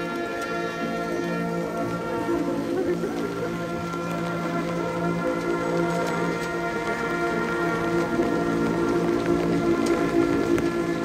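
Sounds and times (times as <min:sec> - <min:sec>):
heavy rain ticking: 0:00.0 - 0:11.0
marching band sustained chord: 0:00.0 - 0:11.0.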